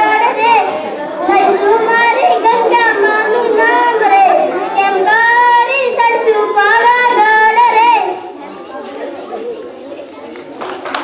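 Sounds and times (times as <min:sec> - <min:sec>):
boy singing: 0:00.0 - 0:08.2
faint background chatter: 0:00.0 - 0:11.0.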